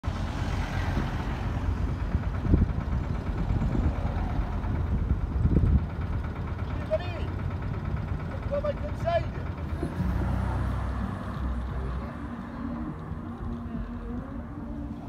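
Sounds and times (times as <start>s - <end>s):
traffic engine rumble: 0.0s - 15.0s
car driving past: 9.7s - 13.3s.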